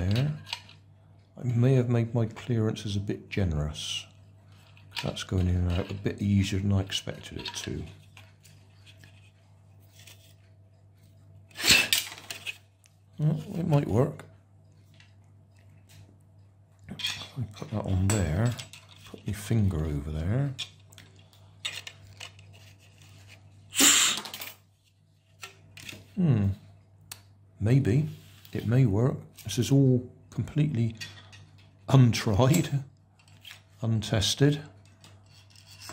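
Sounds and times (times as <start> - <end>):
faint steady hum: 0.0 - 35.9
handling small plastic parts: 20.5 - 23.5
puff of breath into plastic engine: 23.7 - 24.3.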